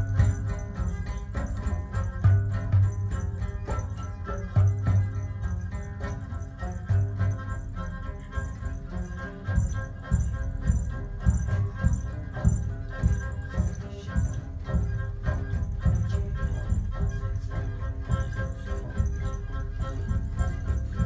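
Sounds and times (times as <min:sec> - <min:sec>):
hand drums: 0:00.0 - 0:21.0
high jingling rhythm: 0:00.0 - 0:21.0
sustained pitched instruments: 0:00.0 - 0:21.0.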